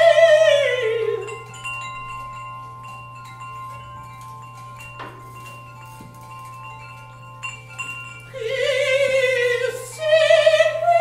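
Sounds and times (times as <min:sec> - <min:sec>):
metal percussion ringing: 0:00.0 - 0:11.0.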